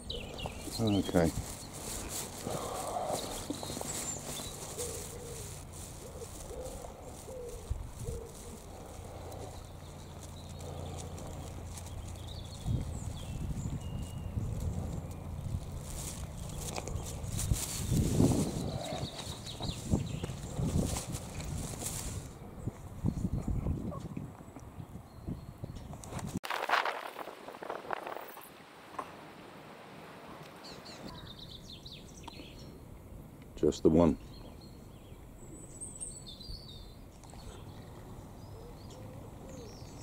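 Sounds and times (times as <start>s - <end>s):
footsteps on a path: 0.0s - 24.4s.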